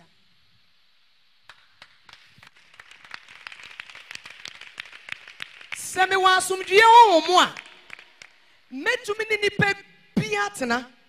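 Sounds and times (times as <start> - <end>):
group of people clapping: 1.4 - 8.6.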